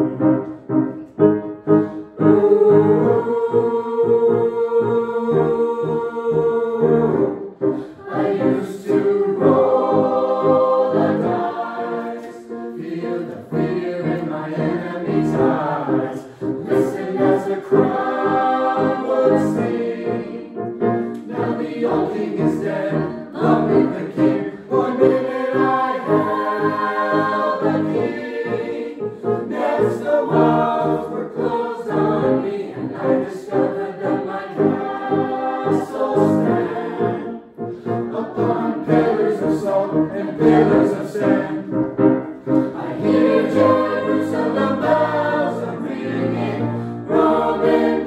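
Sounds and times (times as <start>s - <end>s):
mixed choir singing: 0.0s - 48.0s.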